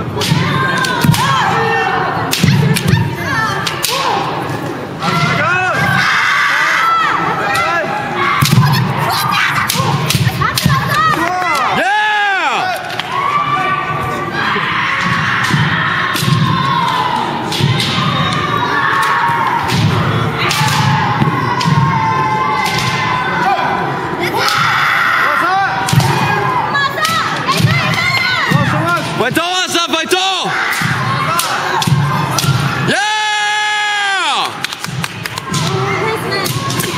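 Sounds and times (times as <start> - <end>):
crowd: 0.0 - 36.9
bamboo swords clacking: 3.6 - 4.2, 30.7 - 32.6.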